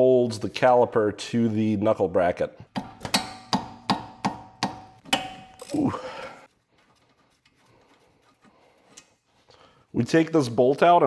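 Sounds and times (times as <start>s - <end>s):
ringing metal clank: 5.1s - 6.0s.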